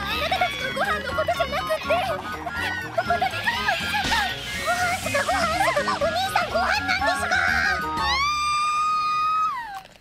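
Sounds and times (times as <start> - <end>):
soft background music: 0.0 - 8.9
girl's high-pitched wail: 6.6 - 9.9.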